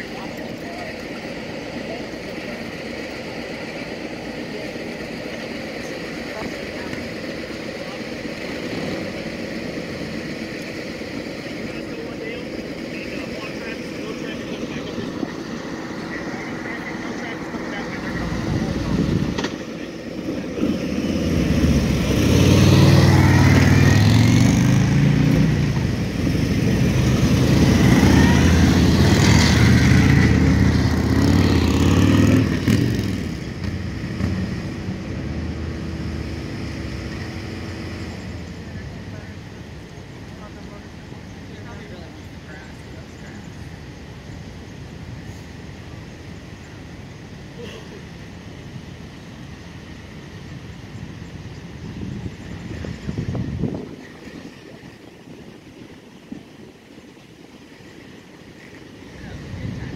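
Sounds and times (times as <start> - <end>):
motorcycle engines passing: 0.0 - 56.7, 57.5 - 59.9
background traffic: 0.0 - 59.9.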